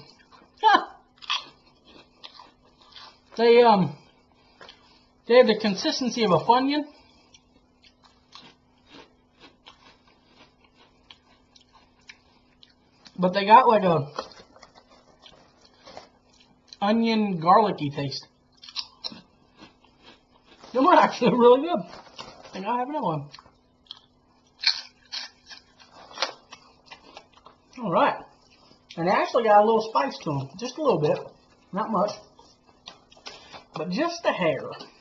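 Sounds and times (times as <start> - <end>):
crunching on prawn cracker: 0.1 - 3.4, 7.0 - 13.2, 18.5 - 21.2, 23.3 - 27.8.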